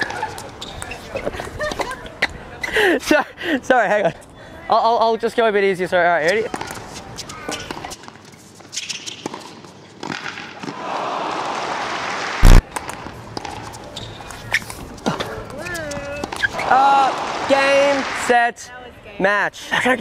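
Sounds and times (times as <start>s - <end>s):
sharp knock: 12.4s - 12.6s.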